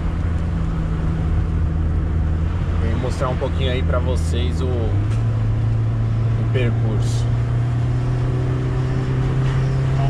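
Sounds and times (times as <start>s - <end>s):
car engine running: 0.0s - 10.0s
road noise: 0.0s - 10.0s.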